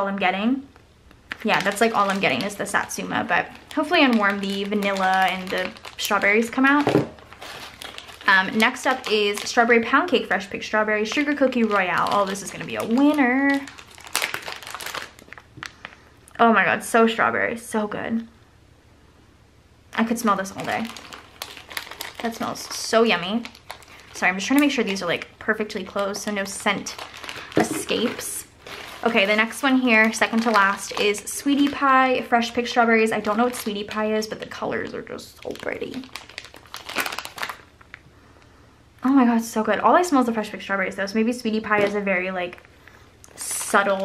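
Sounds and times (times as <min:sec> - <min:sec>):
plastic packaging crinkling: 0:01.2 - 0:16.0, 0:20.2 - 0:38.1, 0:41.6 - 0:44.0.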